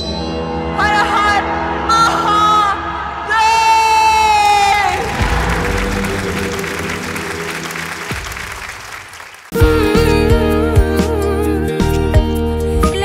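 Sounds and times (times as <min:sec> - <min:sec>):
audience applauding and cheering: 0:04.1 - 0:09.6.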